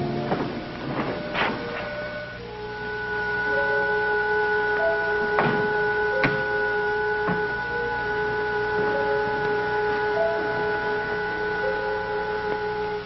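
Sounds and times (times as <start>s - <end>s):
steady electronic tones: 0.0s - 13.0s.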